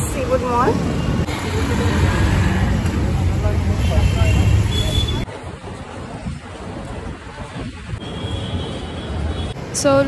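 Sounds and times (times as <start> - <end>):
rumble of traffic engines: 0.0 - 10.0.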